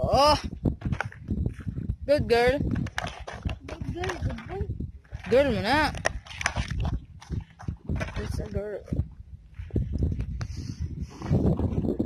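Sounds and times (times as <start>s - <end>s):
footsteps on dirt path: 0.6s - 2.0s, 2.6s - 10.4s.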